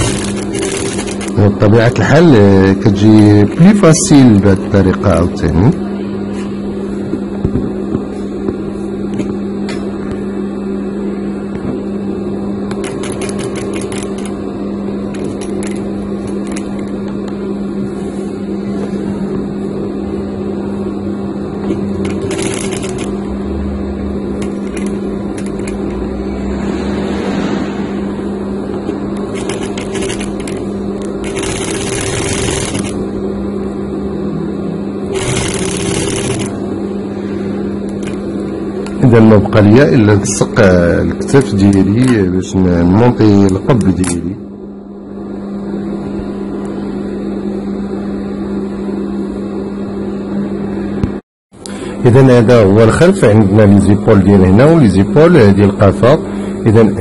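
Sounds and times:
sewing machine humming: 0:00.0 - 0:01.7, 0:12.7 - 0:14.4, 0:21.6 - 0:26.0, 0:29.2 - 0:33.1, 0:35.0 - 0:36.7.

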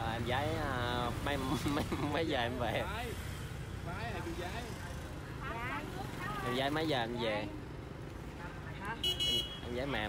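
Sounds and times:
motorbike traffic rumble: 0:00.0 - 0:10.0.

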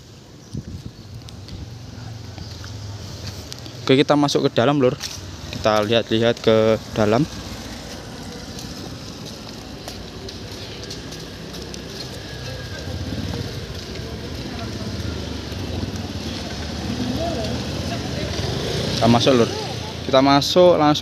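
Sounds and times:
street noise: 0:00.0 - 0:21.0.

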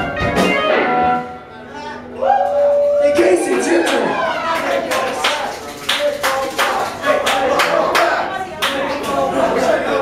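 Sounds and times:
electric guitar notes: 0:00.0 - 0:02.1
audience calling out: 0:02.0 - 0:05.3
audience clapping: 0:03.2 - 0:09.3.

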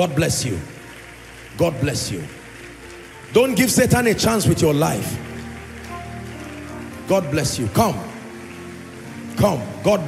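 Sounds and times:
congregation clapping: 0:00.0 - 0:10.0
soft background music: 0:00.0 - 0:10.0.

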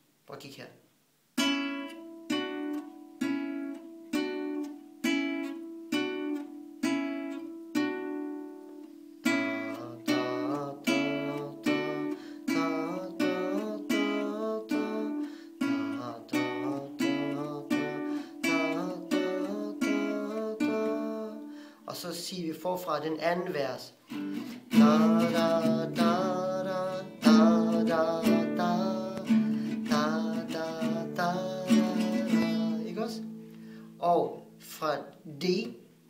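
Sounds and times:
classical guitar playing: 0:01.4 - 0:21.7, 0:24.0 - 0:35.8.

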